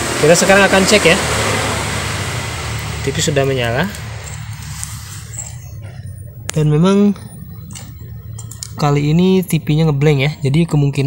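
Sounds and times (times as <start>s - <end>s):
low mechanical hum: 0.0s - 11.0s
noise haze: 0.0s - 11.0s.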